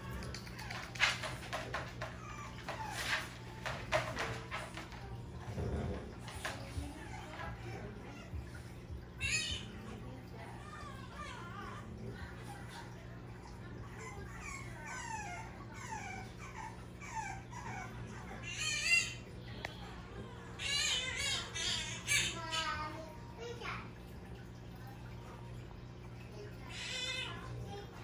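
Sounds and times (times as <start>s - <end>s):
puppy whining: 0.0s - 22.6s.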